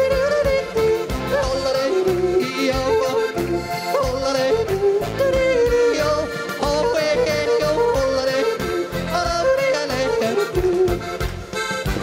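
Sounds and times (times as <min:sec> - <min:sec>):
man yodeling into microphone: 0:00.0 - 0:11.8
folk music with steady beat: 0:00.0 - 0:12.0.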